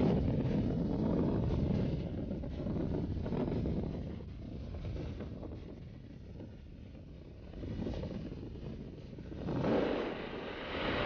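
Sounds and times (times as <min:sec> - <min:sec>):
wind rushing over microphone: 0:00.0 - 0:11.0.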